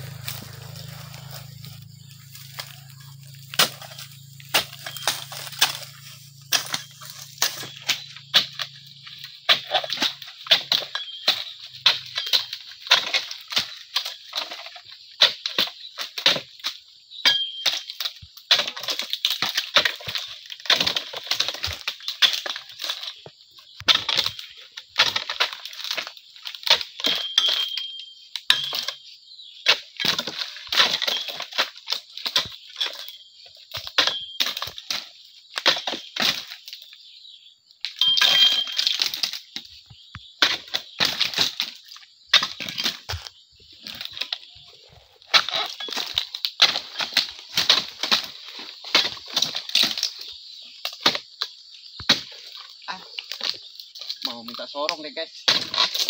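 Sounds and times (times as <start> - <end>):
chisel chopping palm fronds: 0.0 - 16.7, 17.3 - 29.0, 29.6 - 36.7, 40.2 - 44.6, 45.3 - 51.4, 52.0 - 56.0.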